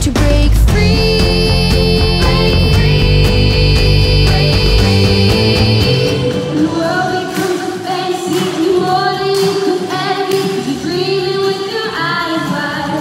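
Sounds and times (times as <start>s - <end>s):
pop music with female singer: 0.0s - 13.0s.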